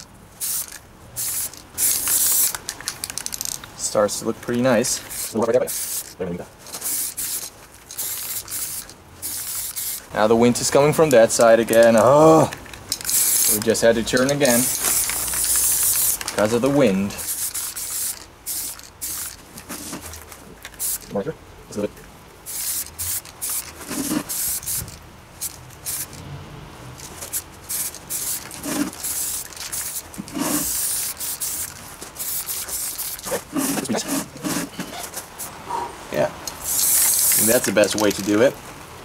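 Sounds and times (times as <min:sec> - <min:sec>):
spray paint can hissing: 0:00.0 - 0:03.6, 0:04.9 - 0:21.1, 0:22.4 - 0:26.2, 0:27.0 - 0:35.6, 0:36.5 - 0:38.3.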